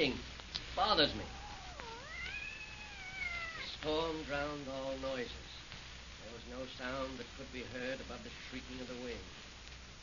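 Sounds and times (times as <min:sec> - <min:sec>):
cat meowing: 0:01.1 - 0:03.8.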